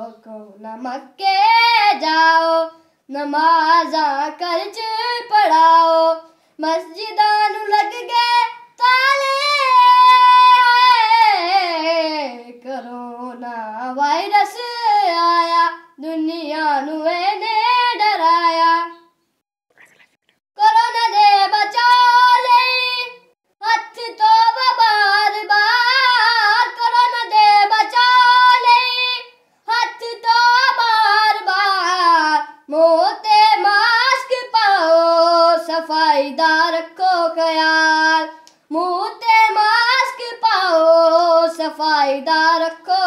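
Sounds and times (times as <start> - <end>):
boy singing solo: 0.0 - 19.0, 20.6 - 43.0
breaths: 2.7 - 3.1, 6.2 - 6.6.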